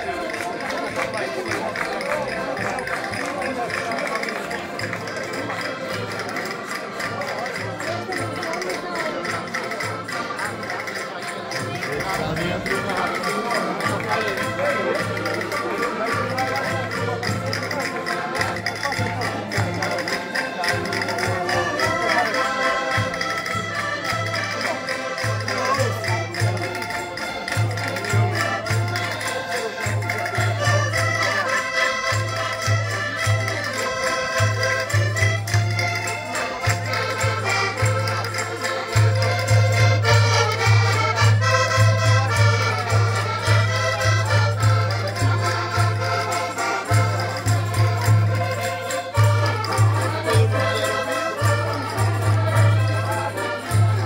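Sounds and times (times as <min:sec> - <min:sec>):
accordions playing a tune: 0:00.0 - 0:54.0.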